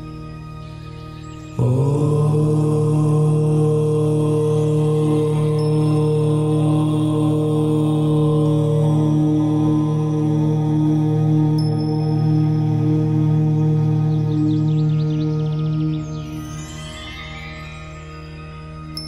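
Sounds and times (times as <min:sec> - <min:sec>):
low voice chanting: 0:01.6 - 0:16.4.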